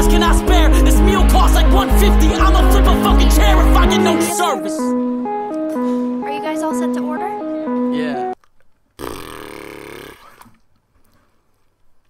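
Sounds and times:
man's rough burp-like vocal sound: 9.0 - 10.4.

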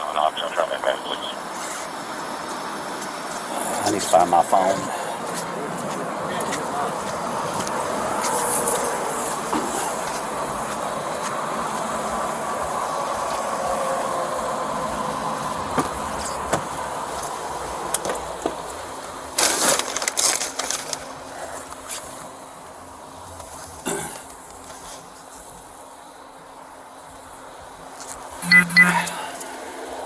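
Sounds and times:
truck engines idling: 0.0 - 28.4
highway traffic: 0.0 - 30.0.

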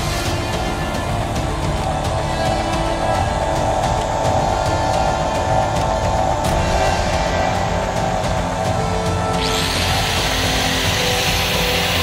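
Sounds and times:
angle grinder whining: 0.0 - 12.0.

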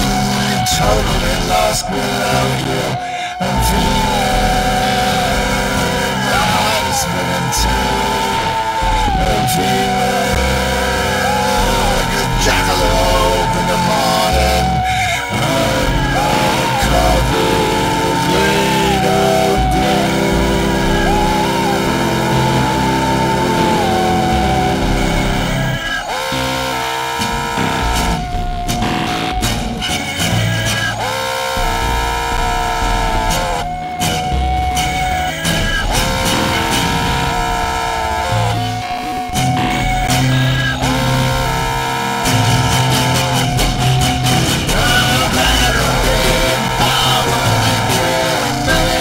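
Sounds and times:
low bass pulses: 0.0 - 49.0
low synthesizer drone: 0.0 - 49.0
sliding electronic tones: 0.0 - 49.0.

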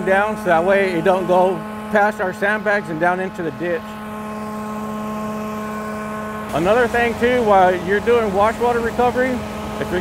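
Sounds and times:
pressure washing machine drone: 0.0 - 10.0.

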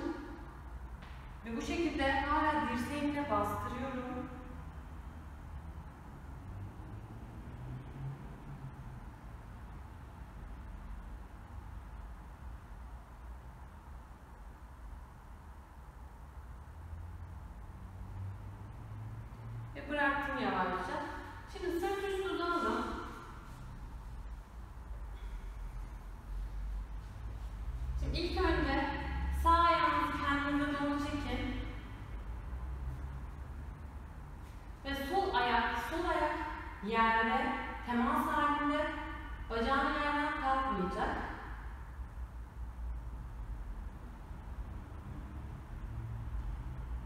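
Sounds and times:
woman speaking: 0.0 - 0.4, 1.4 - 4.4, 19.8 - 23.3, 28.0 - 31.8, 34.8 - 41.5
woman's voice: 0.0 - 0.4, 1.4 - 4.4, 19.8 - 23.2, 28.0 - 31.7, 34.8 - 41.4
low hum of room noise: 0.0 - 47.0.

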